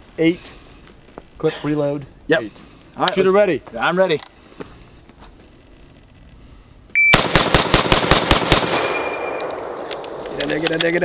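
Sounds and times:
shot timer beep: 0:07.0 - 0:07.2
rifle shots in rapid succession: 0:07.1 - 0:10.2
metallic ping of ejected clip: 0:08.9 - 0:10.1.

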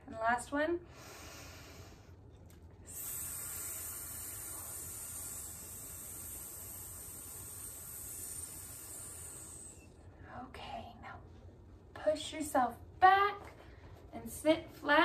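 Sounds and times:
person hissing with mouth: 0:02.9 - 0:10.0.

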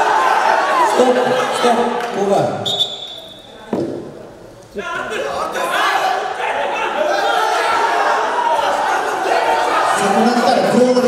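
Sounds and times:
voices: 0:00.0 - 0:11.0
dull thud in echoing hall: 0:03.6 - 0:04.3.

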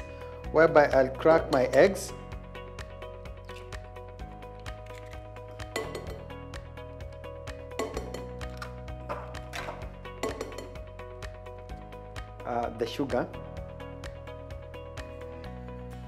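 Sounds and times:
background music with steady beat: 0:00.0 - 0:16.0.

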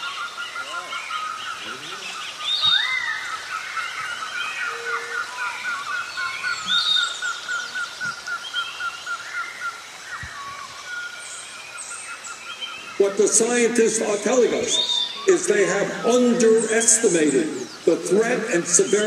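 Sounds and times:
bird chirping rapidly: 0:00.0 - 0:19.0
birds whistled gliding calls: 0:00.0 - 0:19.0.

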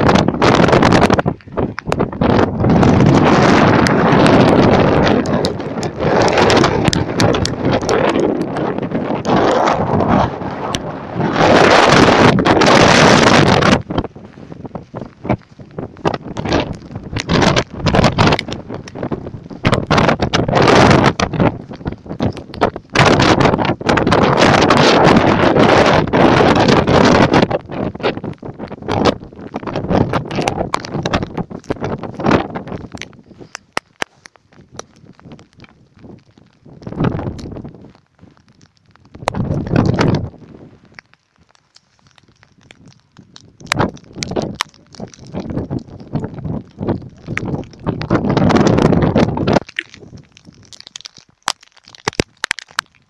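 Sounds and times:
crackling distortion: 0:00.0 - 0:53.0
storm wind buffeting microphone: 0:00.0 - 0:53.0.

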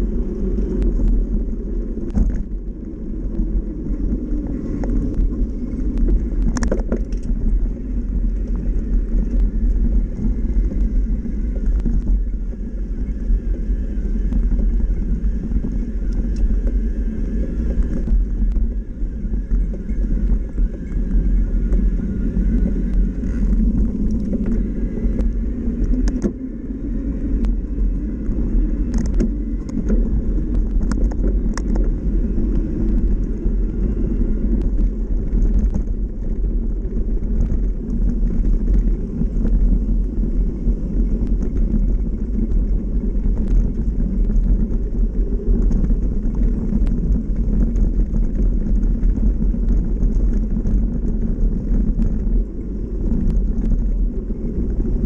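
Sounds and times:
bike tyres rumbling on dirt: 0:00.0 - 0:55.0
clicks and rattles from bumps: 0:04.4 - 0:07.7.

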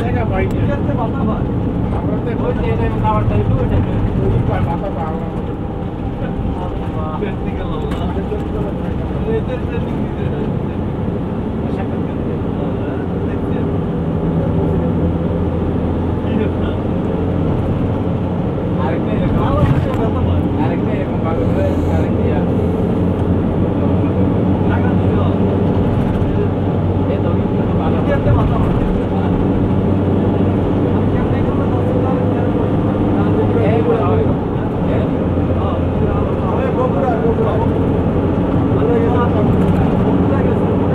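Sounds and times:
vehicle engine and road noise: 0:00.0 - 0:40.9
indistinct voices talking: 0:18.7 - 0:25.4.

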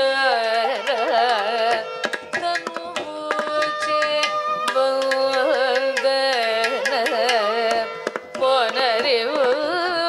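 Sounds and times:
tanpura drone: 0:00.0 - 0:10.0
violin accompaniment: 0:00.0 - 0:10.0
woman singing ornamented phrases: 0:00.0 - 0:10.0.

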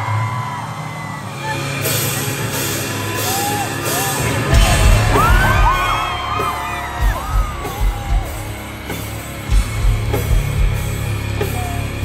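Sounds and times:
crowd whooping and yelling: 0:00.0 - 0:09.8
live rock music: 0:00.0 - 0:12.0.

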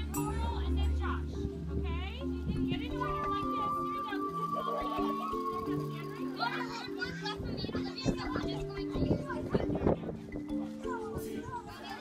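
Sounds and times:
background music of held notes: 0:00.0 - 0:12.0
children chattering and calling out: 0:00.0 - 0:12.0.

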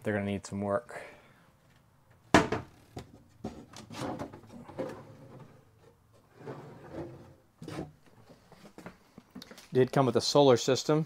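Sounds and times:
cabinet door knocking shut: 0:02.3 - 0:02.7.

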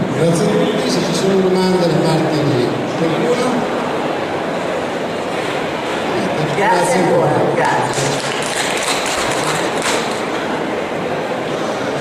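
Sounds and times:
audience applauding: 0:07.6 - 0:10.5.

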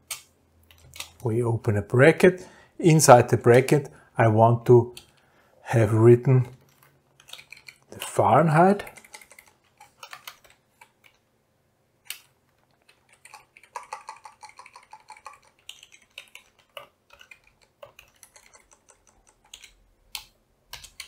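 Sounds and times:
computer keyboard typing: 0:06.5 - 0:11.2, 0:12.1 - 0:21.0.

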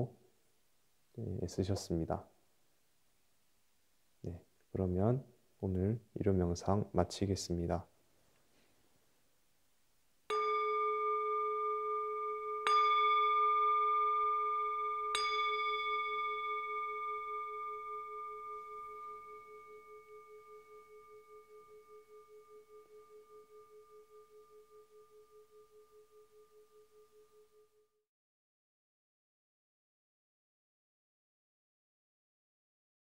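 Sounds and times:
singing bowl ringing: 0:10.3 - 0:28.0.

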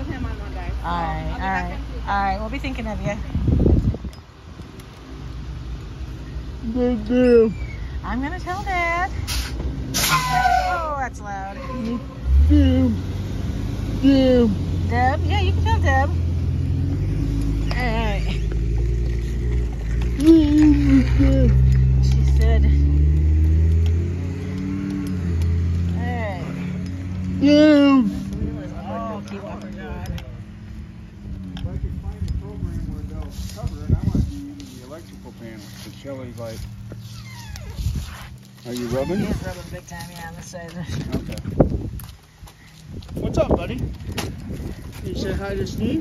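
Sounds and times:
bus engine running: 0:11.8 - 0:38.8.

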